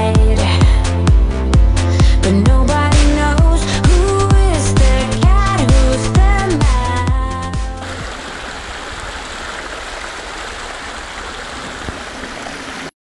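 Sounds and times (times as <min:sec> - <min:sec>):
electronic music: 0:00.0 - 0:08.0
running water rushing: 0:03.6 - 0:13.0.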